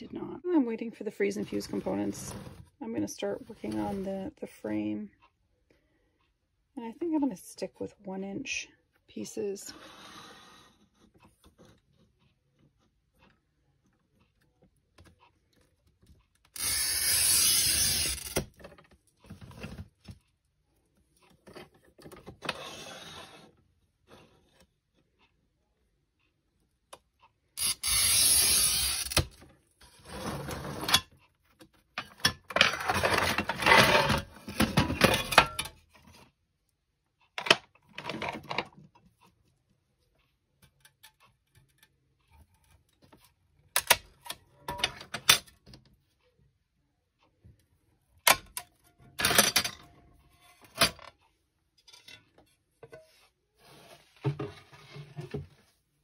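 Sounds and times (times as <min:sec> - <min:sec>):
glass cutter scoring glass: 0:16.6 - 0:18.4, 0:27.6 - 0:29.4.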